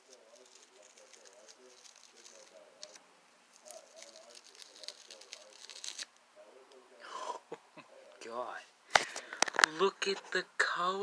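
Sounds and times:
sticker peeling off fabric: 0.0s - 6.1s.

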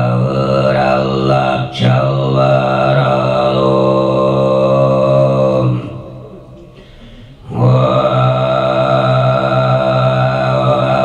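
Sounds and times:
man throat singing: 0.0s - 11.0s
short breath: 6.6s - 7.5s.

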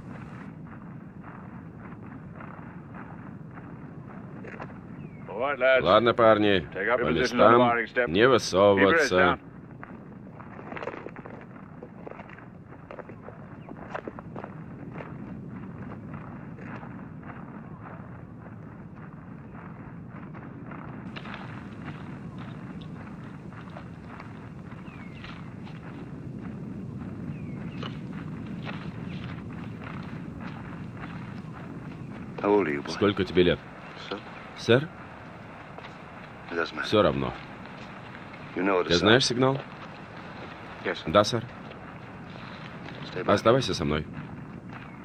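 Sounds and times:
boots and kit shuffling: 10.3s - 45.0s.

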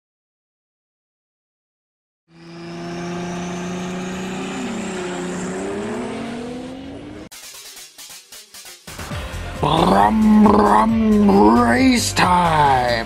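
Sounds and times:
race car engine: 2.3s - 7.3s.

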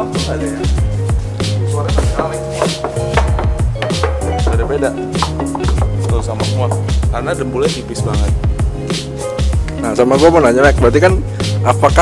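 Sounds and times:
background music with steady beat: 0.0s - 12.0s
knuckles knocking on metal panel: 2.0s - 6.0s.

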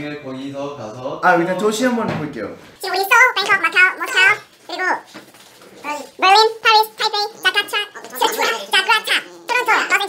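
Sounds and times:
high-pitched voice speaking: 5.8s - 10.0s.

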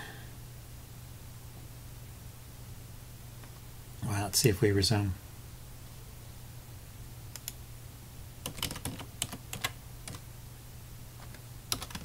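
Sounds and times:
low steady hum: 0.0s - 12.0s
computer keyboard typing: 8.4s - 10.2s, 11.2s - 12.0s.

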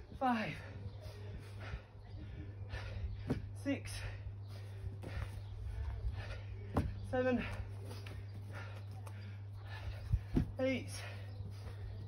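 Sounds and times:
steady low hum: 0.0s - 12.0s
feet landing on grass: 6.7s - 8.4s.

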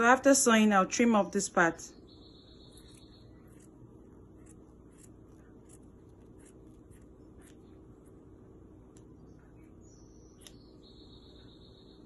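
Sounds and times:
low steady hum: 0.0s - 12.0s
scissors snipping fabric: 2.8s - 7.8s.

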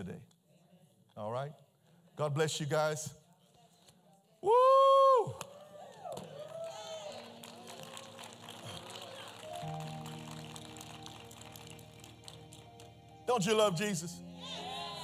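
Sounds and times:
man shouting woo: 4.4s - 5.4s
keyboard sustained chords: 7.0s - 15.0s.

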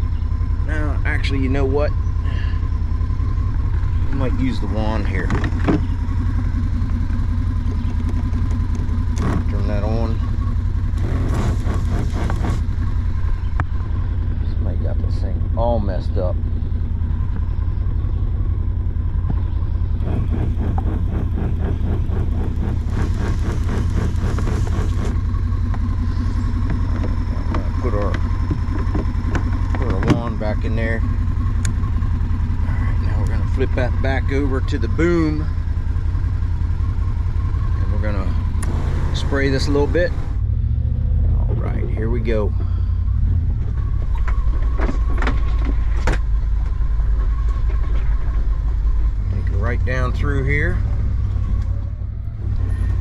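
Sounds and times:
engine idling: 0.0s - 53.0s
electric pump running: 20.0s - 25.3s.

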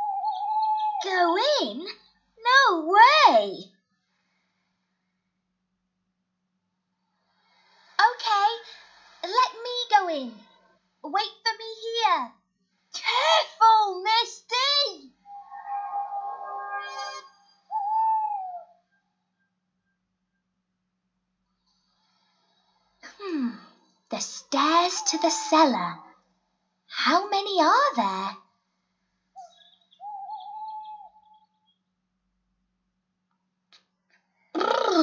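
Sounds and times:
long hooting tone: 15.2s - 18.7s.

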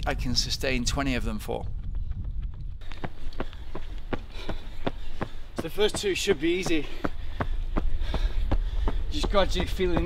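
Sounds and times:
steady low rumble: 0.0s - 10.0s
running footsteps on asphalt: 1.6s - 10.0s.

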